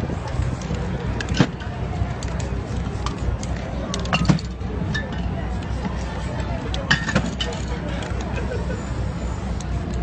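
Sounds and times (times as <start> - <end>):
low traffic rumble: 0.0 - 10.0
murmur of voices: 0.0 - 10.0.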